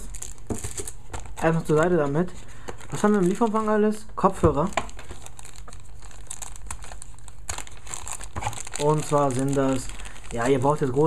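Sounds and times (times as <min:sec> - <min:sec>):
plastic bag crinkling: 0:00.0 - 0:03.9, 0:04.6 - 0:11.0.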